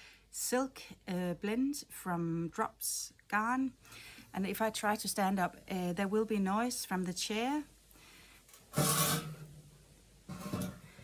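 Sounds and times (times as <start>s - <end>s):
chair creaking and scraping: 8.5s - 9.5s, 10.3s - 11.0s.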